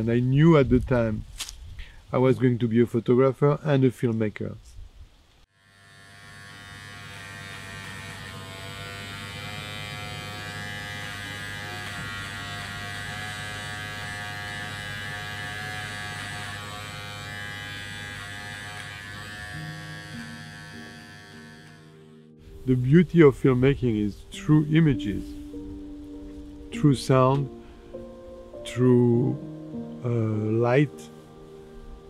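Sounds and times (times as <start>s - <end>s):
electric hair clippers buzzing: 5.5s - 22.3s.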